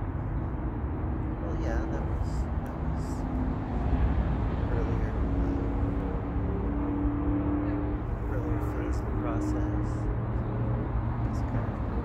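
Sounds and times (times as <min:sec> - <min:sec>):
distant motor vehicle drone: 0:00.0 - 0:12.0
low outdoor rumble: 0:00.0 - 0:12.0.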